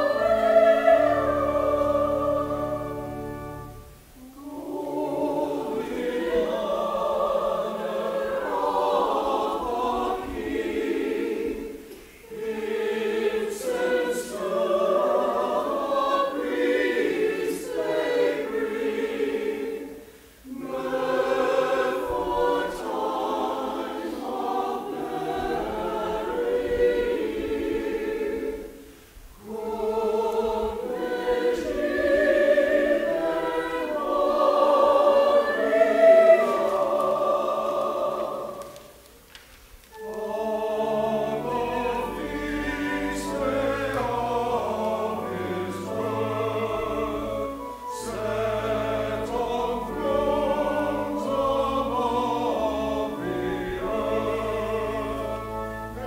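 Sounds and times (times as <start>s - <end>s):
mixed choir singing: 0.0s - 39.1s, 39.9s - 56.0s.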